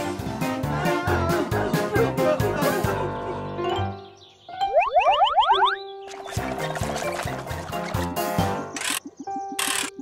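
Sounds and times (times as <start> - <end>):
cartoon boing pitch glides: 4.6 - 5.8.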